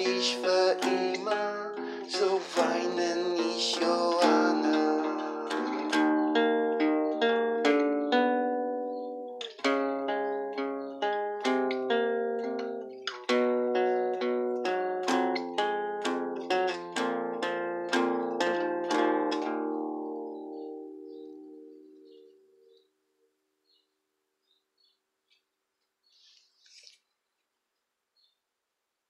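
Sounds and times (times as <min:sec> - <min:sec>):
acoustic guitar picked notes: 0:00.0 - 0:23.8.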